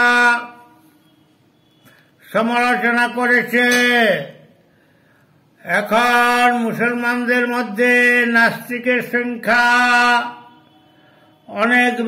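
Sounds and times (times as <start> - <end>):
man speaking: 2.2 - 4.5, 5.6 - 10.5, 11.5 - 12.0.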